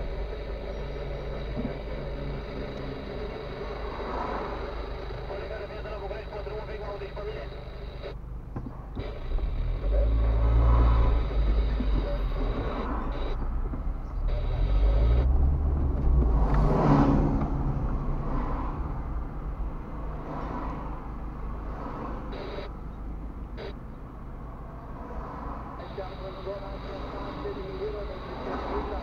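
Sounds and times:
car engine and road rumble: 0.0s - 29.0s
trolleybus passing: 0.0s - 29.0s.

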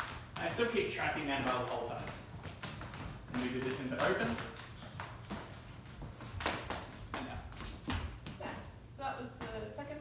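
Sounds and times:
shoes tapping on wooden floor: 0.0s - 8.7s.

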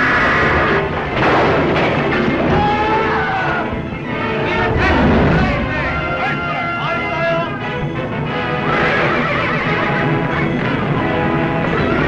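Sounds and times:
battle noise: 0.0s - 7.6s
orchestral film music: 0.0s - 12.0s.

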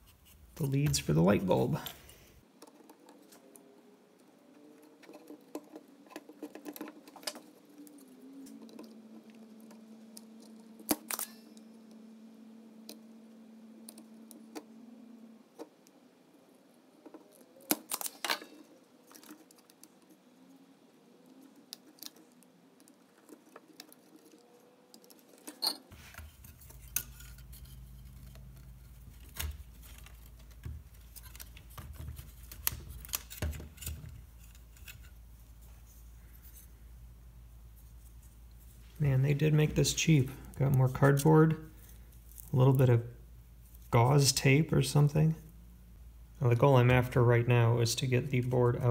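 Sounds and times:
faint low hum: 0.0s - 48.9s.

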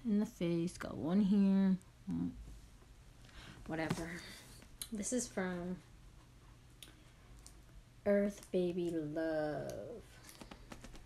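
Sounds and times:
fingers clicking on cardboard box: 10.3s - 11.0s.

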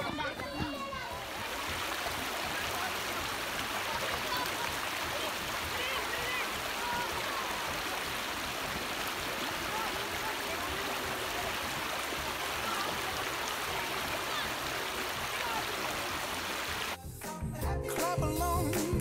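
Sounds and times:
faint children's voices: 0.0s - 8.0s, 9.5s - 16.0s
children splashing in water: 0.0s - 16.9s
river water rushing: 1.1s - 17.0s.

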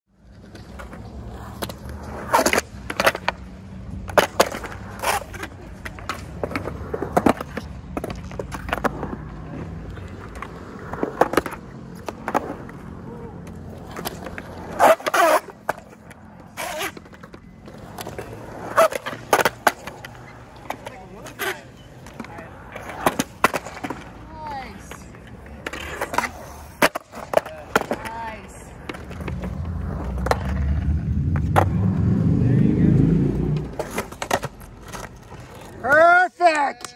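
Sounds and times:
skateboard wheels rolling: 0.1s - 36.7s
skateboards clacking on concrete: 0.2s - 32.0s, 33.4s - 36.9s.

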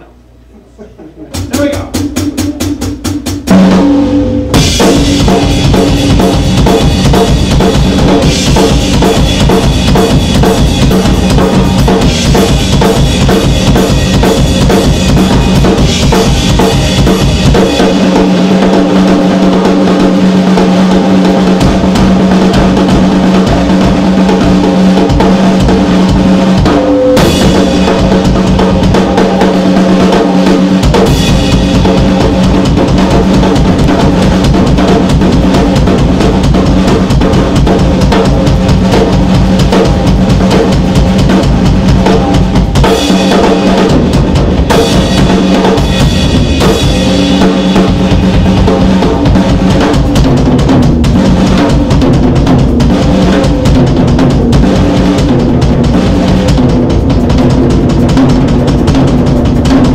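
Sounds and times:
drum rolls on snare and toms: 1.3s - 59.9s
bass drum beating: 1.4s - 59.9s.

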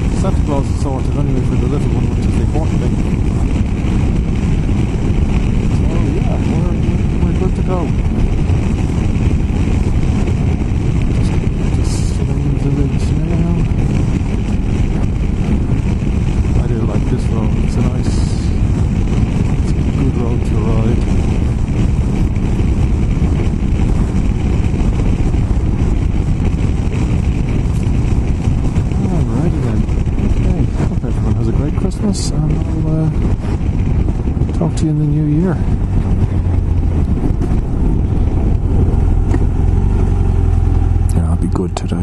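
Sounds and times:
motorcycle engine running: 0.0s - 42.0s
wind noise on microphone: 0.0s - 42.0s.

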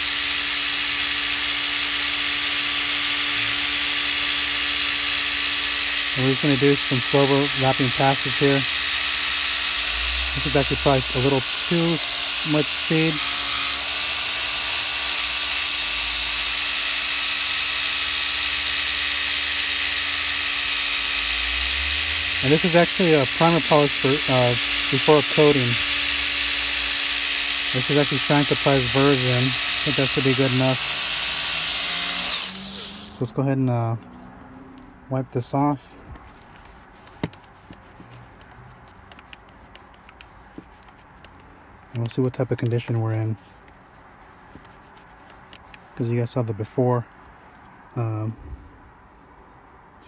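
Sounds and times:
polisher whining: 0.0s - 33.4s.

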